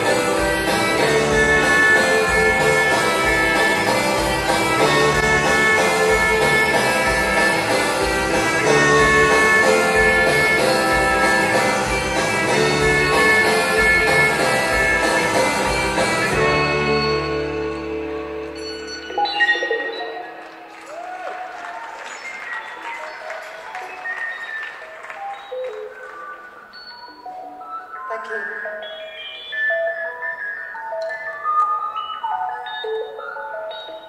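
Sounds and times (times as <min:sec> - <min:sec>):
high ringing keyboard notes: 0:00.0 - 0:20.5.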